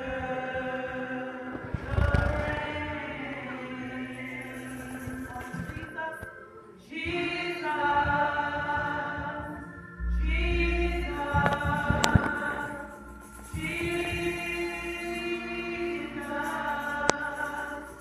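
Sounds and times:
congregation singing gospel: 0:00.0 - 0:18.0.

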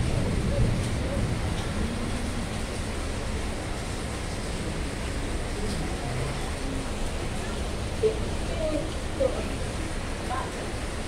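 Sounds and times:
heavy rain: 0:00.0 - 0:11.0.

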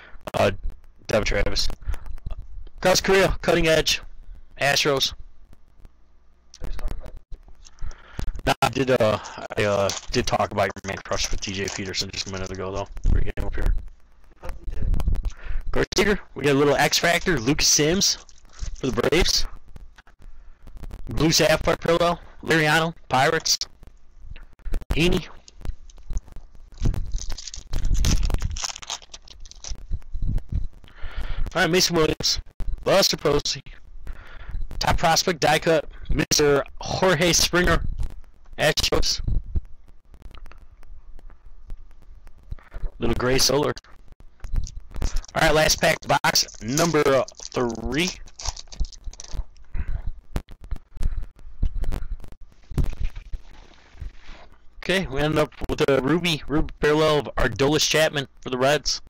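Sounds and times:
foil wrapper crinkling and tearing: 0:09.1 - 0:13.2, 0:16.8 - 0:19.4, 0:25.4 - 0:30.1, 0:44.6 - 0:49.7.

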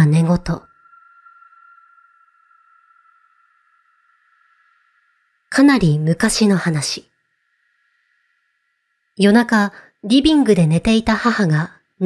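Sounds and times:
high-pitched electronic tone: 0:00.0 - 0:05.5.

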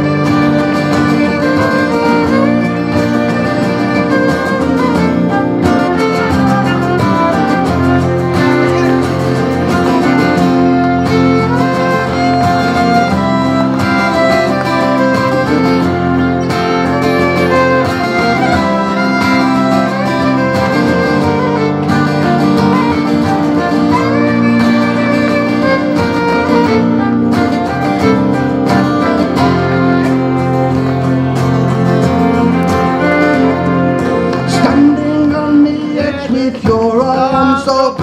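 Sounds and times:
fiddle melody: 0:00.0 - 0:37.9
strummed guitars: 0:00.0 - 0:38.0.

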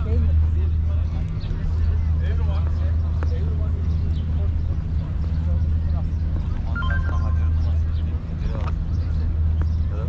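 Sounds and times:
people's voices: 0:00.0 - 0:10.0
steady low rumble: 0:00.0 - 0:10.0.

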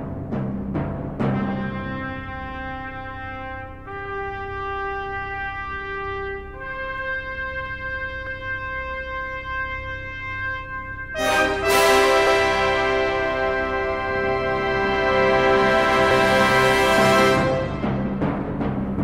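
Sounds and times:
orchestral brass chords: 0:01.3 - 0:19.0.

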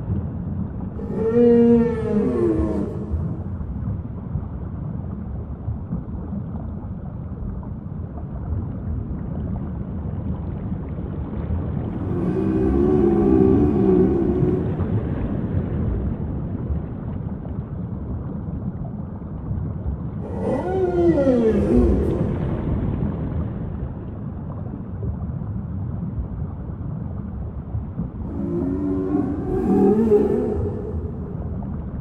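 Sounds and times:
whale calls: 0:00.9 - 0:03.7, 0:11.9 - 0:15.6, 0:20.2 - 0:23.2, 0:28.1 - 0:32.0
steady low rumble: 0:02.6 - 0:20.4, 0:21.6 - 0:32.0.

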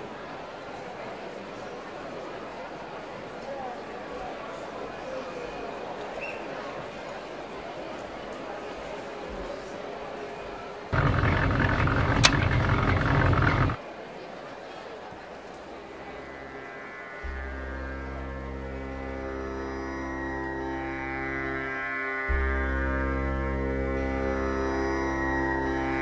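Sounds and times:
electronic tanpura drone: 0:10.9 - 0:13.8, 0:15.4 - 0:26.0
click: 0:11.8 - 0:13.7.

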